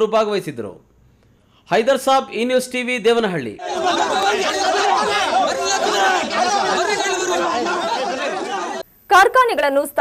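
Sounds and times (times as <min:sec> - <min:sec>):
crowd of men talking at once: 0:03.6 - 0:08.8.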